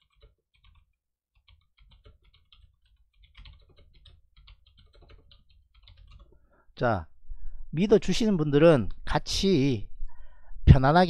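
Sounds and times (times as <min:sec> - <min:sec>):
typing on computer keyboard: 0:00.0 - 0:06.5.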